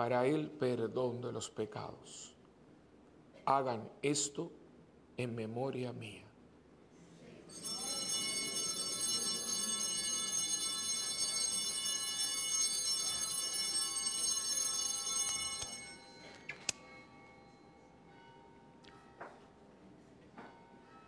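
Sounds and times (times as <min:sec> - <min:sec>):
altar bells jingling: 0:07.5 - 0:19.2
sharp clink: 0:15.5 - 0:17.2.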